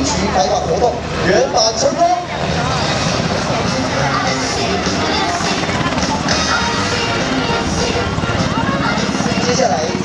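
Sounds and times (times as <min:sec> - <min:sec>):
helicopter flying overhead: 0:00.0 - 0:10.0.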